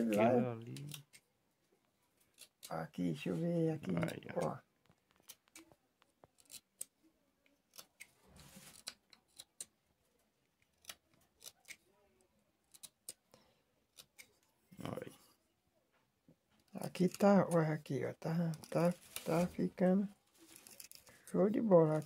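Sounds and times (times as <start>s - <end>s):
knife scraping wood: 2.2s - 2.7s, 6.3s - 6.9s, 7.7s - 9.7s, 20.4s - 22.0s.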